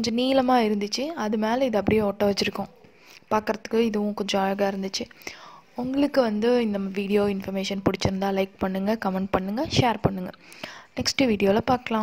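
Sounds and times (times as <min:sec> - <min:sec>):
woman talking: 0:00.0 - 0:05.2, 0:05.8 - 0:10.4, 0:11.0 - 0:12.0.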